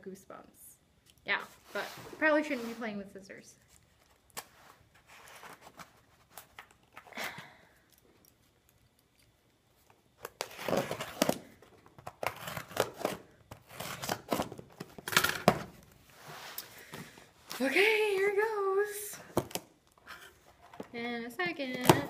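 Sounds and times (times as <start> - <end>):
tape and cardboard tearing: 10.2 - 15.8.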